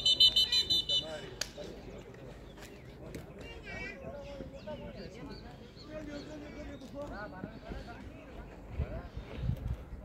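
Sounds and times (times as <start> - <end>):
referee whistle trilling blast: 0.0 - 1.2.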